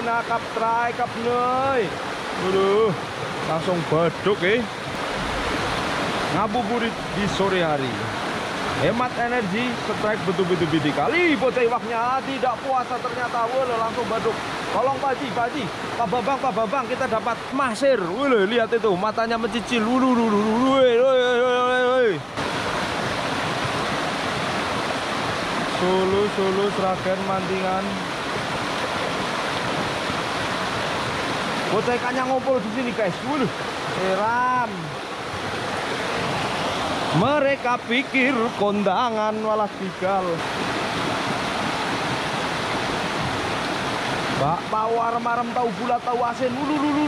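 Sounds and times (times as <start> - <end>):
stream rushing over rocks: 0.0 - 47.0.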